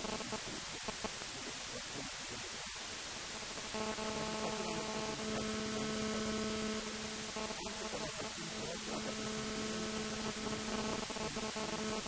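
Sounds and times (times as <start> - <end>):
electrical hum: 0.0 - 12.0
recording hiss: 0.0 - 12.0.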